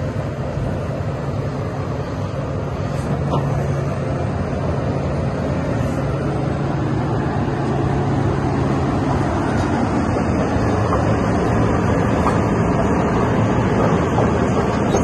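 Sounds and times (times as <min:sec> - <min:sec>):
diesel engine idling: 0:00.0 - 0:15.0.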